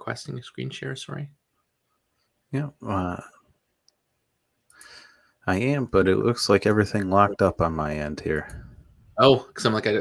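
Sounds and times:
soft breathy hiss: 4.7 - 5.5.

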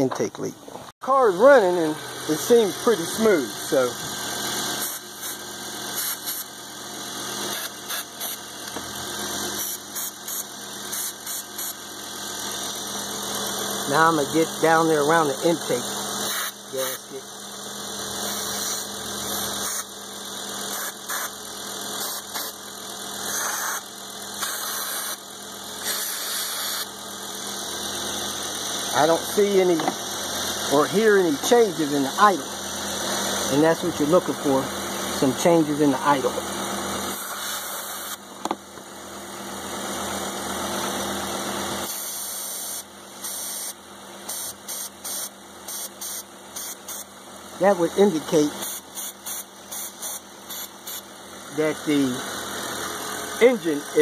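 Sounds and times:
aerosol spray hissing: 4.8 - 6.5, 9.6 - 11.8, 18.3 - 19.8, 20.7 - 21.3, 23.3 - 23.8, 24.4 - 25.2, 25.8 - 26.8, 48.6 - 51.0.

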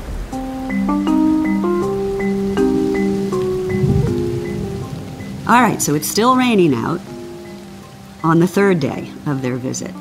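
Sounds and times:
steady rain: 0.0 - 10.0
sustained musical notes: 0.3 - 10.0.

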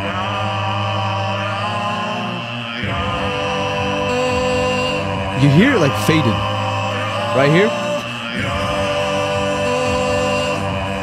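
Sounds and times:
looped vocal drone chord: 0.0 - 11.0.

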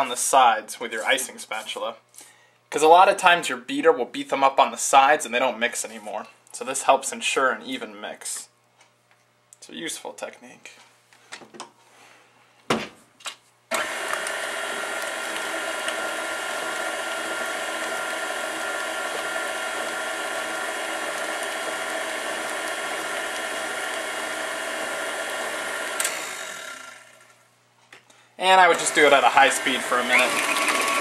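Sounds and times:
stand mixer motor whining: 13.7 - 27.4, 28.7 - 31.0.

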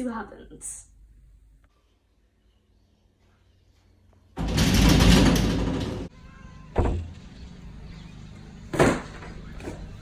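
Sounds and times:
door rattling: 4.4 - 7.2.

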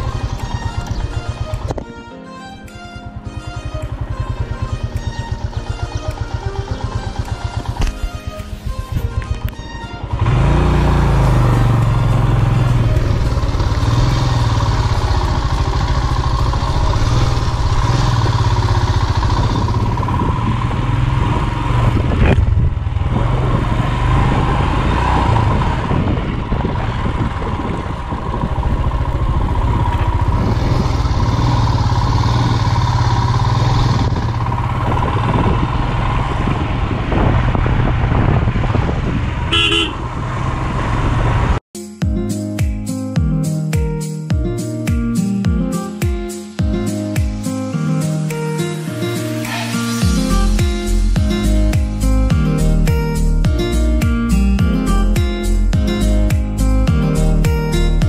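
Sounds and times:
motorcycle engine running: 0.0 - 2.0, 2.8 - 41.6
road and wind noise: 0.0 - 41.7, 46.6 - 58.0.

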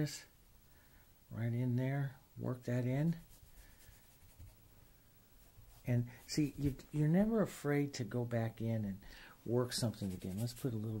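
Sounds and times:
paintbrush strokes on wood: 3.0 - 4.7, 5.4 - 7.0, 9.7 - 11.0.

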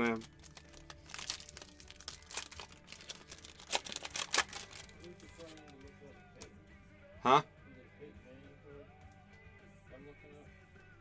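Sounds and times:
foil wrapper crinkling: 0.0 - 5.9
faint music: 0.0 - 11.0.

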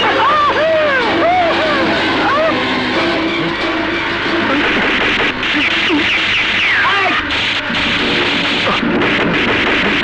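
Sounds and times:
action film music: 0.0 - 10.0.

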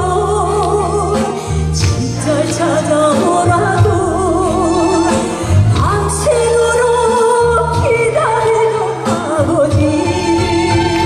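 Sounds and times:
instrumental backing track: 0.0 - 11.0
woman singing a ballad: 0.0 - 11.0.

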